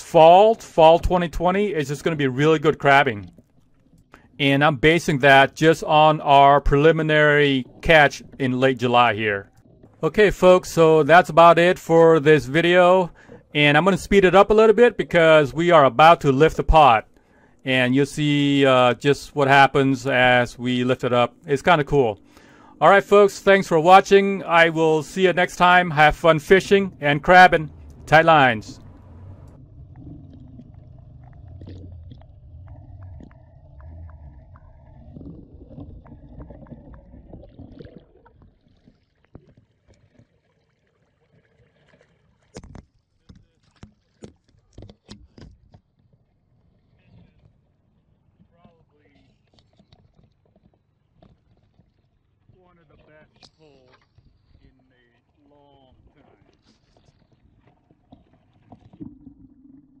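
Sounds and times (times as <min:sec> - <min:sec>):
muffled underwater rumble: 0:02.7 - 0:38.6
steady low hum: 0:12.0 - 0:37.3.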